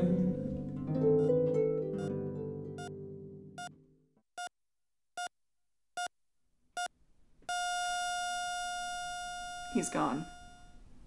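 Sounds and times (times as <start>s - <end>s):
heart monitor beeping: 7.5s - 10.8s
heart monitor flatline tone: 7.5s - 10.8s.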